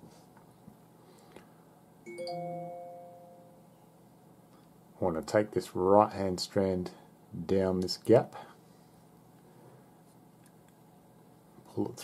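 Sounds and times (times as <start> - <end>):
bell-like chime: 2.1 - 3.7.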